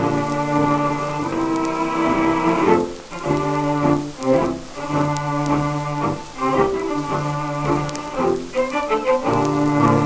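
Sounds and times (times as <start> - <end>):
record surface crackle: 0.0 - 10.0
strings ensemble sustained chords: 0.0 - 10.0.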